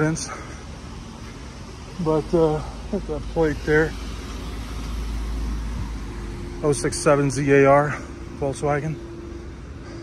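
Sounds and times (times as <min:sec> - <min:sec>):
low rumble of cars: 0:00.0 - 0:10.0.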